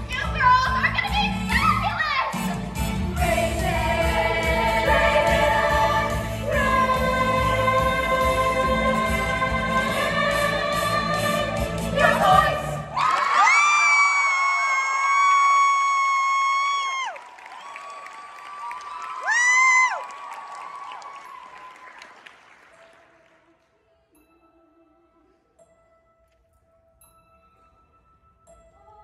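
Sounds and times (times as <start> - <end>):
backing track music: 0.0 - 13.0
young ensemble singing: 2.8 - 13.0.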